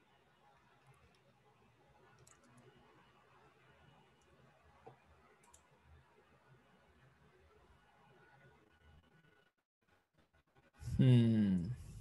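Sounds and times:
faint clicks: 2.1s - 2.7s, 4.2s - 5.7s.

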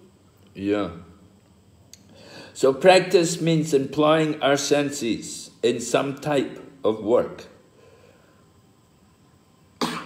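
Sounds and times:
man coughing: 9.8s - 10.0s.

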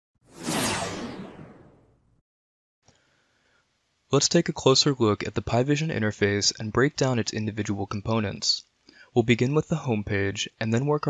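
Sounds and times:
whoosh sound effect: 0.3s - 1.9s.

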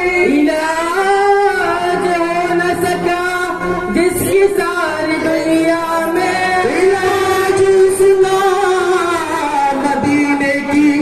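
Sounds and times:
male voices singing: 0.0s - 11.0s.

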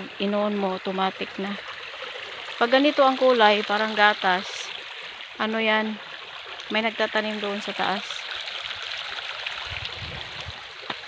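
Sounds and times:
creek water trickling over rocks: 0.0s - 11.0s.

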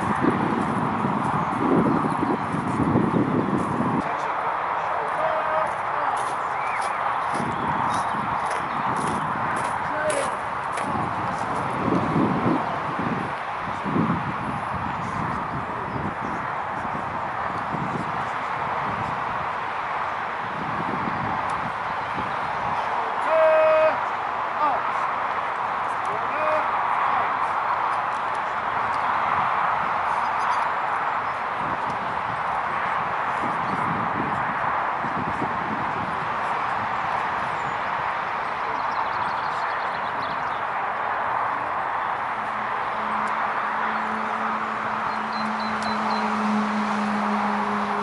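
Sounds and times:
faint voices: 3.8s - 7.0s, 9.7s - 10.5s, 22.7s - 25.1s, 25.9s - 27.7s
man shouting drill command: 5.0s - 6.2s, 9.9s - 10.4s, 23.2s - 24.0s, 26.1s - 26.7s.

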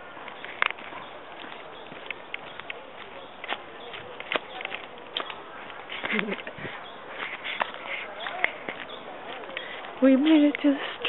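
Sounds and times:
faint voices: 0.0s - 11.0s
footsteps on garden path: 0.0s - 11.0s.

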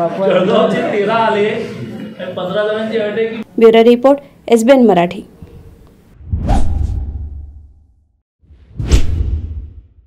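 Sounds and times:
rising whoosh with low rumble: 6.2s - 10.0s.

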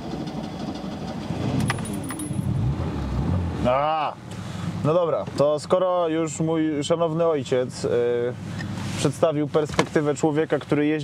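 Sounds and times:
car engine running: 0.0s - 5.4s.

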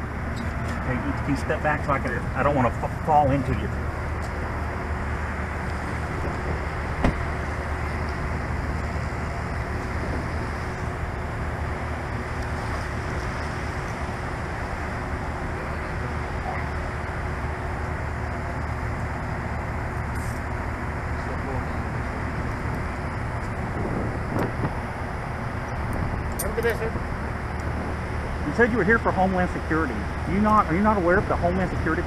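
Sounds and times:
car engine idling hum: 0.0s - 32.0s.

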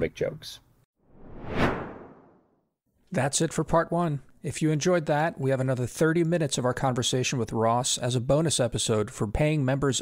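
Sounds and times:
whoosh: 1.0s - 2.5s.

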